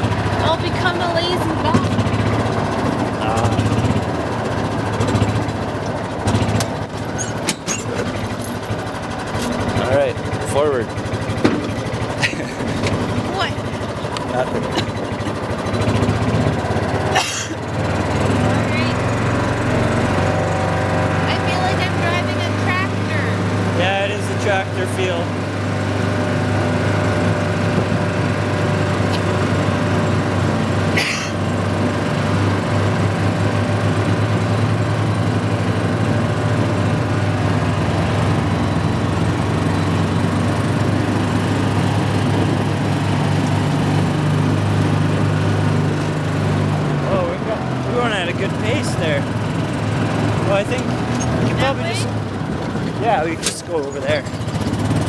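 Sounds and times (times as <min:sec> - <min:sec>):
small vehicle engine running: 0:00.0 - 0:55.0
sharp knocks: 0:11.4 - 0:11.8.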